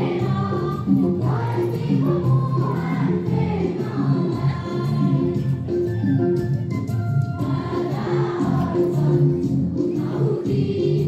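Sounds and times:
group singing in chorus: 0.0 - 5.6, 7.4 - 11.0.

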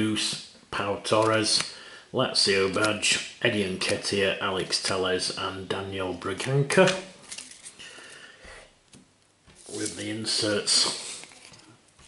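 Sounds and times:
trading cards rustling and sliding: 7.2 - 8.1, 9.5 - 11.8.

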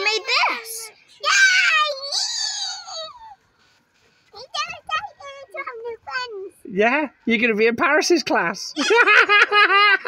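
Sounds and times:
child's high-pitched squeal: 0.0 - 3.4.

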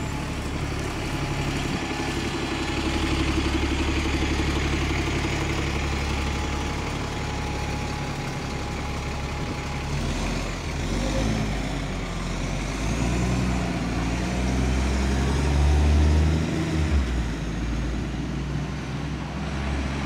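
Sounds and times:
bus engine running: 0.0 - 20.0
vehicle engine: 0.0 - 20.0.

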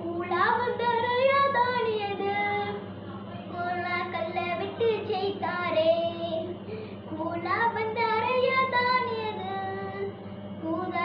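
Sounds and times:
young girl singing: 0.0 - 11.0.

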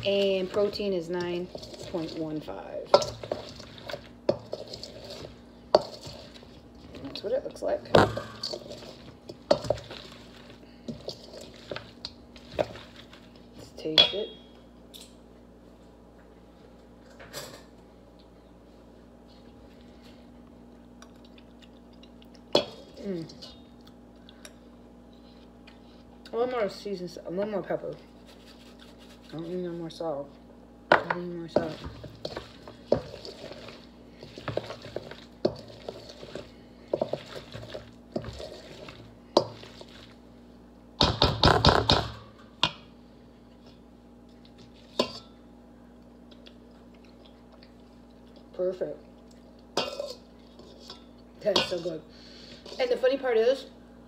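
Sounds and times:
metal spoon scraping steel bowl: 0.0 - 6.6, 8.0 - 11.8, 52.6 - 53.1
wooden spoon stirring in metal bowl: 0.0 - 14.4, 28.0 - 30.1, 30.9 - 40.3, 43.6 - 45.3, 49.8 - 53.7
steady low hum: 0.0 - 54.0.

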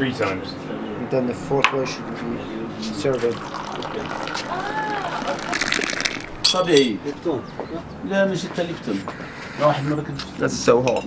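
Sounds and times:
tea pouring into a glass: 2.8 - 6.9.

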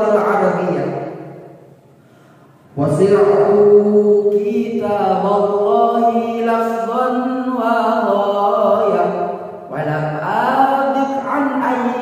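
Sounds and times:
man chanting melodically: 0.0 - 1.2, 2.7 - 12.0.

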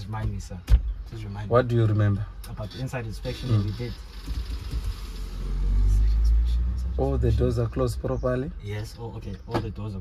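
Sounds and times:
low vehicle rumble: 0.4 - 10.0.

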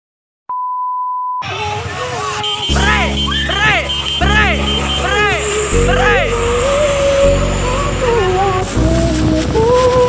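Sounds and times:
song with sung vocal: 1.4 - 10.0.

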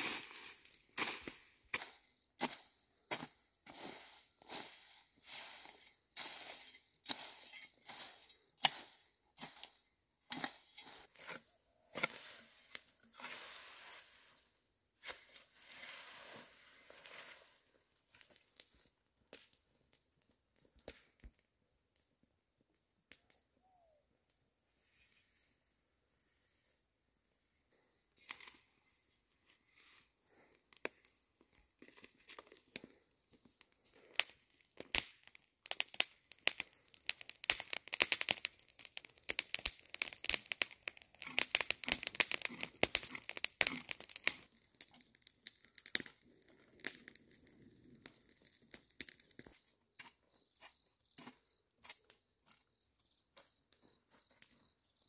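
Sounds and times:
dry plants rustling and tearing: 31.6 - 46.2.

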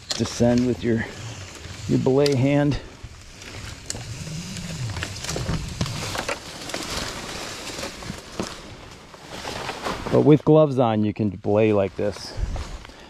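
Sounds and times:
rope and hardware clicks: 0.0 - 9.0.

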